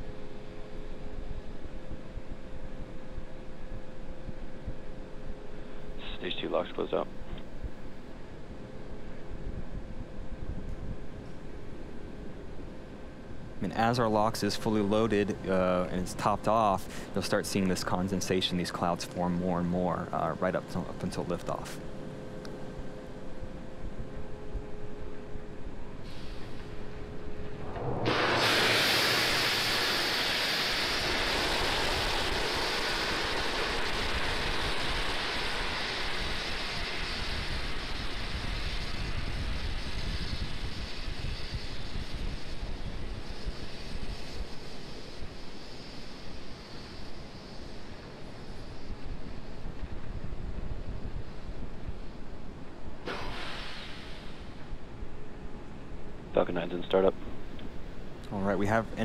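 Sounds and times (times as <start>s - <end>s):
faint hum: 0.0s - 59.0s
rocket venting hiss: 13.4s - 21.8s, 25.8s - 59.0s.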